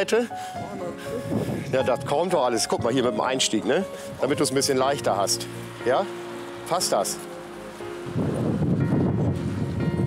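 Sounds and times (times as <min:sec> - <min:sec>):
faint background music: 0:00.0 - 0:10.0
low rumble buffeting microphone: 0:00.6 - 0:05.8, 0:07.8 - 0:10.0.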